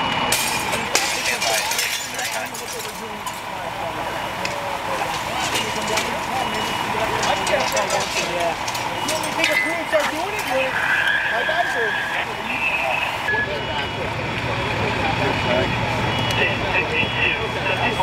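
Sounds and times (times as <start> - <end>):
fire engine motors running: 0.0 - 18.0
indistinct voices: 0.0 - 18.0
radio chatter: 0.6 - 18.0.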